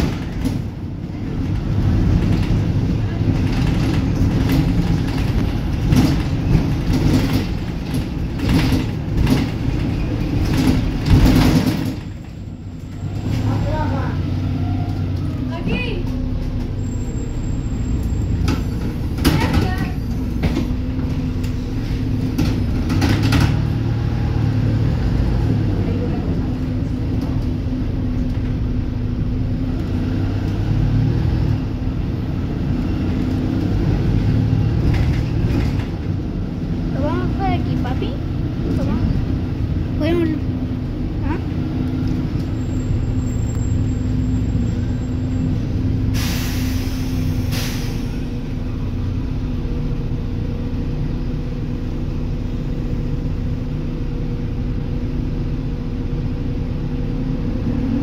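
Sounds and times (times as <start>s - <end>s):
bus engine drone: 0.0s - 58.0s
road rumble: 0.0s - 58.0s
air brake hiss: 46.0s - 48.3s.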